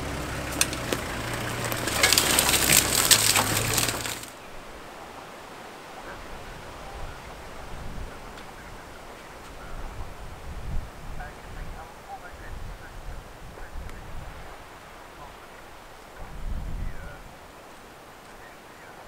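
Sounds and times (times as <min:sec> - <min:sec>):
sharp crackling and snapping: 0:00.0 - 0:04.4
vehicle engine idling: 0:00.0 - 0:04.4.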